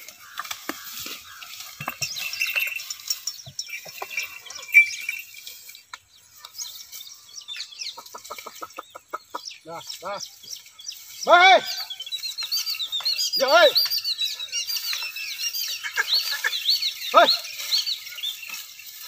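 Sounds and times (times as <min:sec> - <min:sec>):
birds chirping: 0:00.0 - 0:19.0
short clucking calls: 0:15.6 - 0:17.2.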